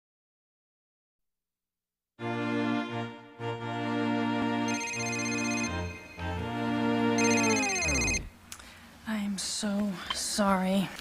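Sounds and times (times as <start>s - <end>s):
music slowing down in pitch: 2.2s - 8.3s
mobile phone ringtone: 4.7s - 6.4s, 7.2s - 8.3s.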